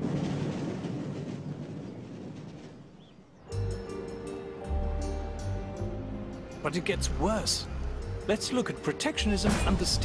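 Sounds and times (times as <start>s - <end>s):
music: 3.5s - 10.0s.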